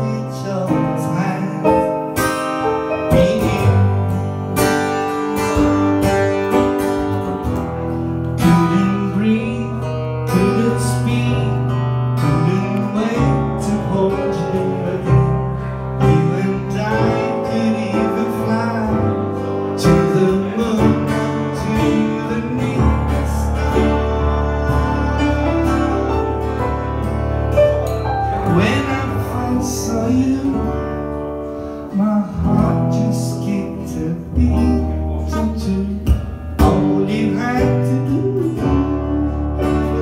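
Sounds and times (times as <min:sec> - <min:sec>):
acoustic guitar playing: 0:00.0 - 0:40.0.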